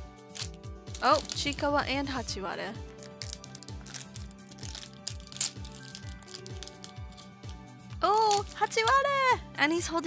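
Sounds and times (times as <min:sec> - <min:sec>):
background music with steady beat: 0:00.0 - 0:10.0
wrapper crinkling and tearing: 0:00.3 - 0:01.6, 0:02.9 - 0:09.1.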